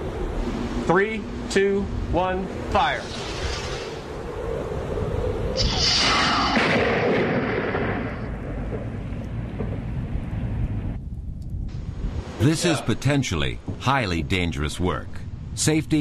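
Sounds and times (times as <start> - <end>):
rocket launching with rushing hiss: 2.9 - 4.3, 5.5 - 8.3
loud thunder crack: 5.6 - 10.2.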